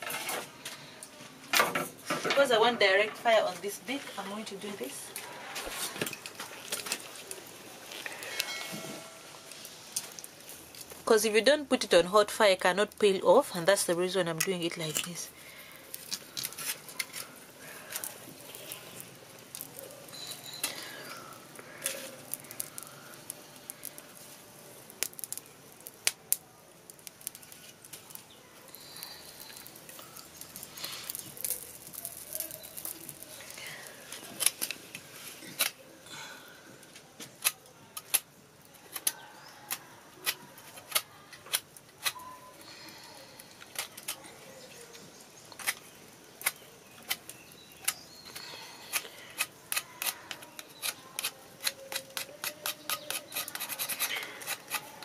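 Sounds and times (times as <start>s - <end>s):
knife scraping chicken head: 49.7s - 55.0s.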